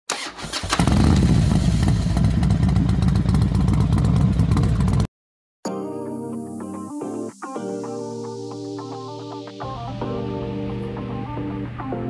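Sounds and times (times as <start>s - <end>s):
motorcycle engine starting and running: 0.1s - 5.1s
music: 5.6s - 12.0s.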